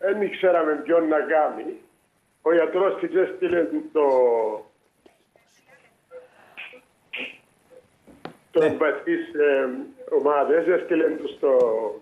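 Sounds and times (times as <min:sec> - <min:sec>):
man's voice over phone: 0:08.6 - 0:12.0.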